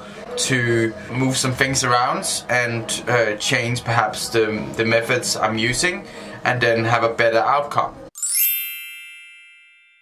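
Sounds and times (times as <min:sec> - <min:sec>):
bright bell-like ding: 0:08.2 - 0:10.0.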